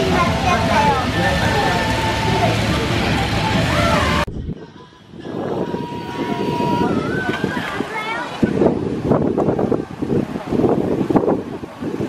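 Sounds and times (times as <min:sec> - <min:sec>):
steam locomotive rumble: 0:00.0 - 0:07.8
crowd voices: 0:00.0 - 0:12.0.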